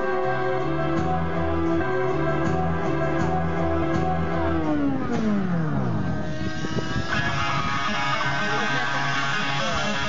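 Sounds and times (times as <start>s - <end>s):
guitar music: 0.0s - 10.0s
music: 0.0s - 10.0s.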